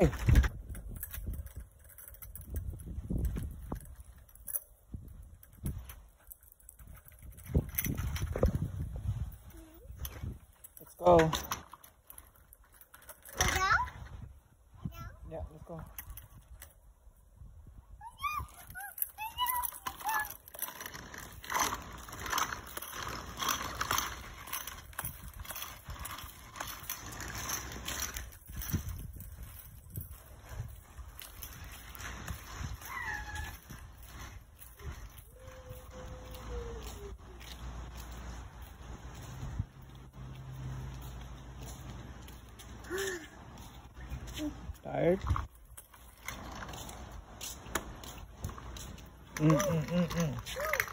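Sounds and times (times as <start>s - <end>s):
plastic scooter rattling over asphalt: 0.0s - 17.2s, 18.0s - 50.9s.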